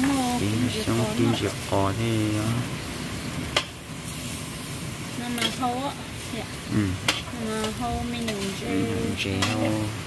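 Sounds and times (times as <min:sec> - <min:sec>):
cabbage sizzling in a pot: 0:00.0 - 0:10.0.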